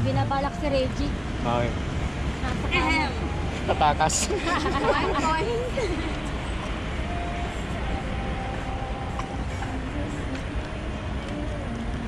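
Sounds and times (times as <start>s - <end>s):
city road traffic: 0.0s - 12.0s.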